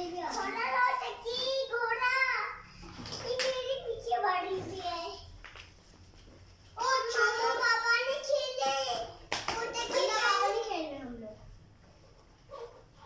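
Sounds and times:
sharp clicks or claps: 9.3s - 9.8s.

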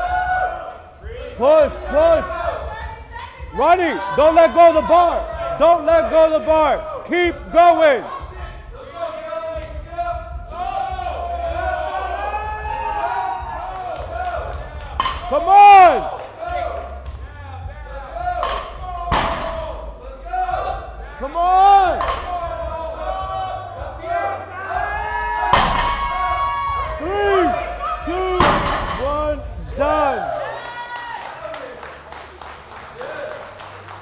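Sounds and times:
men shouting: 18.4s - 31.2s.

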